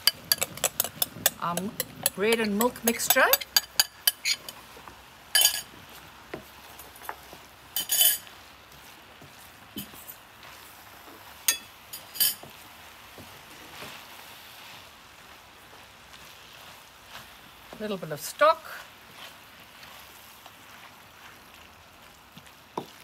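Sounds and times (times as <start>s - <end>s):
spatula clinking against pan: 0.0s - 4.6s
spatula stirring in frying pan: 0.0s - 23.0s.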